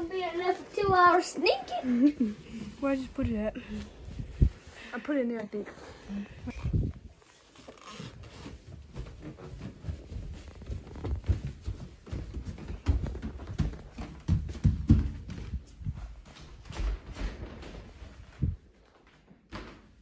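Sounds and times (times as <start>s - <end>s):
rustling near microphone: 0.0s - 19.3s
footsteps running on hardwood floor: 8.4s - 18.6s.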